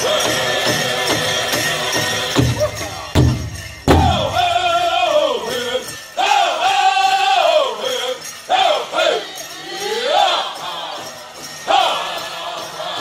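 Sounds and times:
powwow drum group singing: 0.0s - 13.0s.

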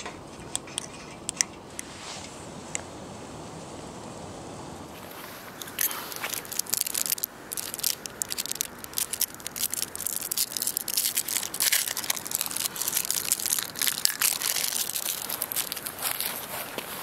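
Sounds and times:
foil wrapper crinkling: 5.0s - 17.0s.

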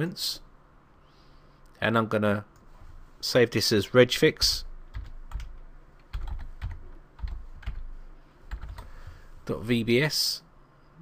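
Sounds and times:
computer keyboard typing: 4.4s - 7.9s, 8.5s - 8.9s.

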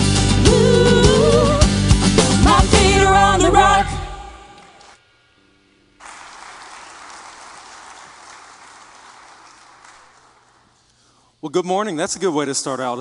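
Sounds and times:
congregation applauding: 6.0s - 10.9s.

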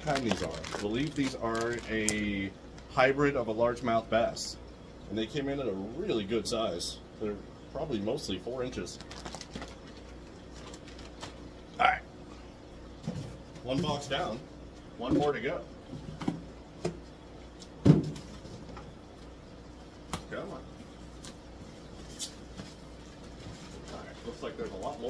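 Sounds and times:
plastic bag rustling and tapping: 0.0s - 2.2s
low room hum: 0.0s - 25.0s.

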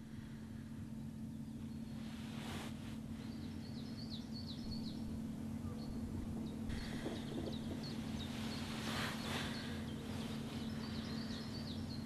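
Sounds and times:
birds chirping: 0.0s - 12.0s
steady low hum: 0.0s - 12.0s.

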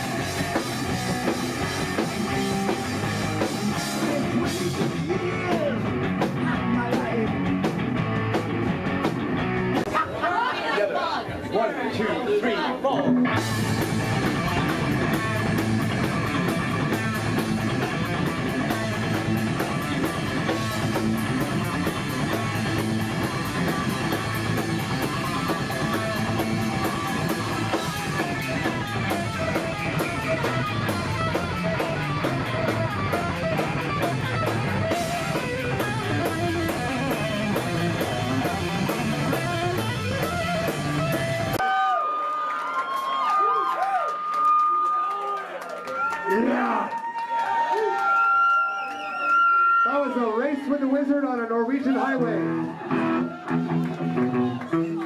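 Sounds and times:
thrash metal band playing: 0.0s - 9.9s, 13.0s - 41.6s.

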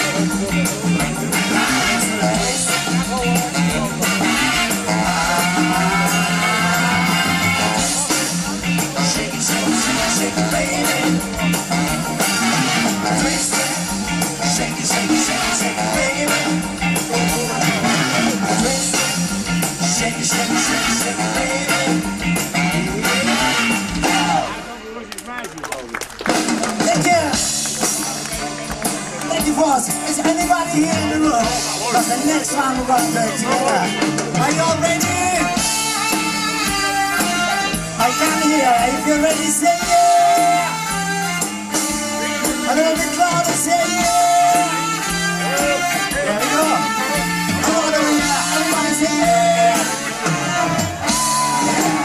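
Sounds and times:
voice on microphone: 0.0s - 11.6s, 29.1s - 41.2s, 42.3s - 52.0s
pulsing bass line: 0.0s - 24.7s, 26.6s - 52.0s
electric guitar: 0.0s - 24.8s, 26.0s - 52.0s
live blues-rock band: 0.0s - 25.3s, 25.9s - 52.0s.

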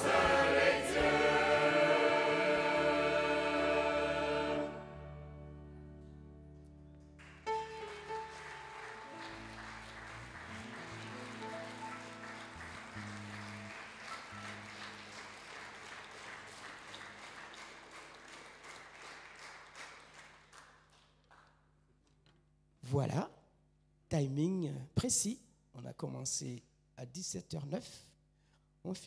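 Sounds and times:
soft sustained keyboard chords: 0.0s - 14.9s
audience applauding: 7.0s - 21.5s.

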